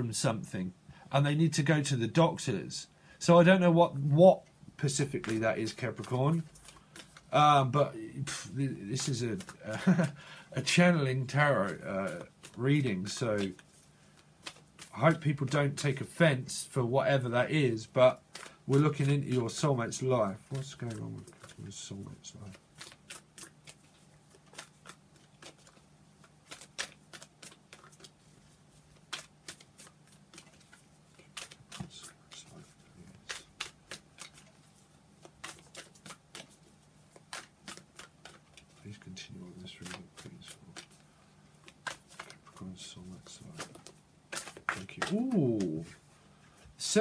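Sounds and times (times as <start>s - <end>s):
cards being shuffled: 4.8s - 47.0s.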